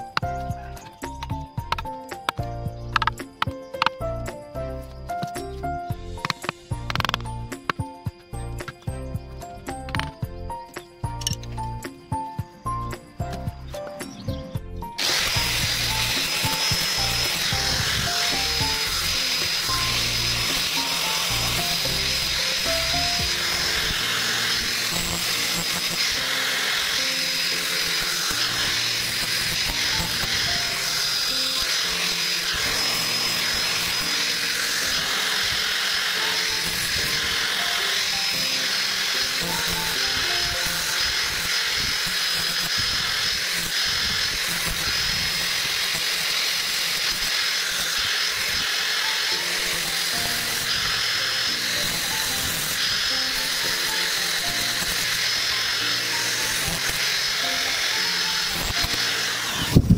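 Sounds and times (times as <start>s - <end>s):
background music: 0.0s - 42.0s, 49.2s - 59.9s
angle grinder sanding wood: 15.0s - 59.9s.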